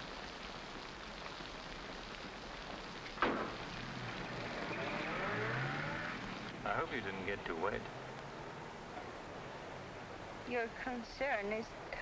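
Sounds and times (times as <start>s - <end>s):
steady rain: 0.0s - 12.0s
car engine revving: 3.6s - 8.2s.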